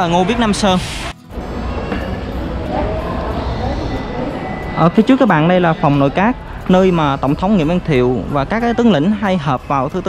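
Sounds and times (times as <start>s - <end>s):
faint indistinct voices: 0.0s - 10.0s.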